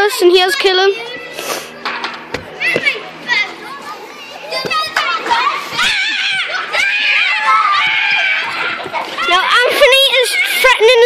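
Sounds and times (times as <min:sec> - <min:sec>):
distant children shouting: 0:00.0 - 0:11.0.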